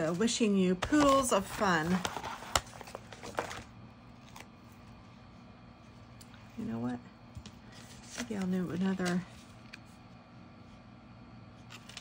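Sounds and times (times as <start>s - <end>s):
paper rustling: 0.0s - 4.8s
low steady hum: 0.0s - 12.0s.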